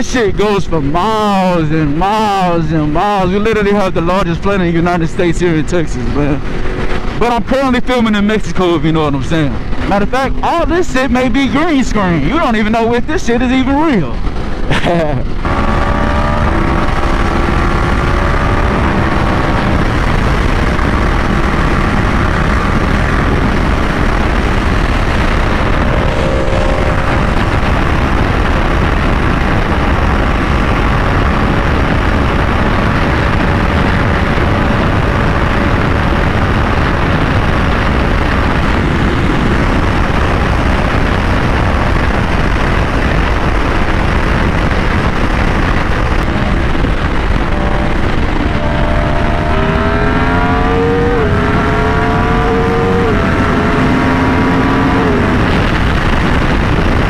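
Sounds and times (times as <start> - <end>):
wind rush: 0.0 - 12.6, 13.7 - 57.0
motorcycle engine cruising: 2.2 - 12.8, 13.6 - 57.0.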